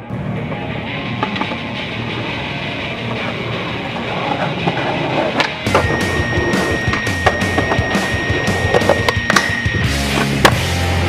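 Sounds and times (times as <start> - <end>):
skateboard wheels rolling on concrete: 0.2 - 10.9.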